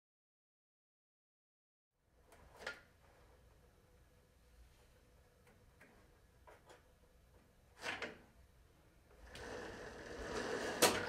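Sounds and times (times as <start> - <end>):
rubbing sliding noise: 9.3 - 11.0.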